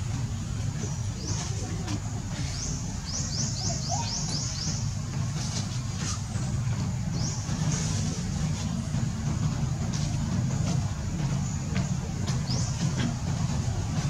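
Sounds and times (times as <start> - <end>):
steady low rumble: 0.0 - 14.0.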